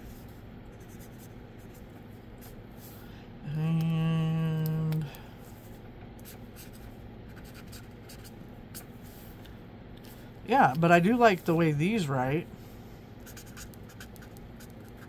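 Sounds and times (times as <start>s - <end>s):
marker scratching on paper: 0.0s - 2.6s, 6.2s - 9.2s, 13.2s - 15.0s
person humming one note: 3.5s - 5.1s.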